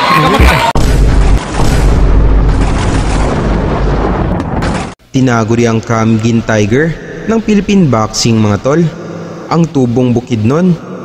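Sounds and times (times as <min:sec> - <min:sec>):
deep rumbling boom: 0:00.8 - 0:05.0.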